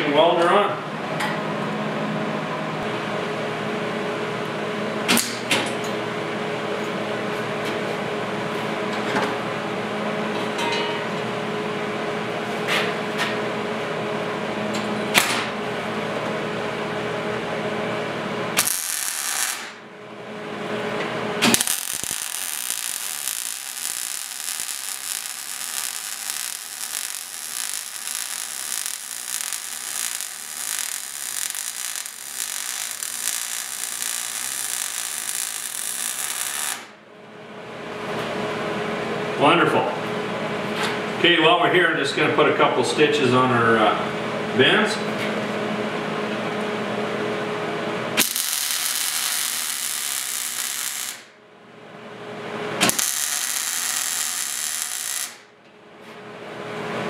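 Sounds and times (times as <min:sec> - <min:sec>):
steady hum: 0:00.0 - 0:57.0
welder arc crackling: 0:18.5 - 0:19.8, 0:21.4 - 0:37.0, 0:48.2 - 0:51.3, 0:52.8 - 0:55.5.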